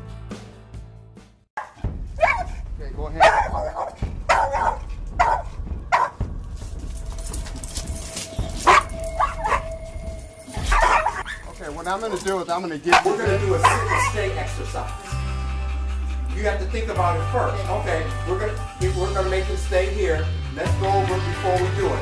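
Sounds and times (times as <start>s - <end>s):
dog barking and yelping: 1.6s - 2.6s, 3.2s - 6.2s, 8.6s - 9.8s, 10.5s - 11.6s, 12.9s - 14.3s
dog whining: 8.6s - 9.8s, 10.5s - 11.6s.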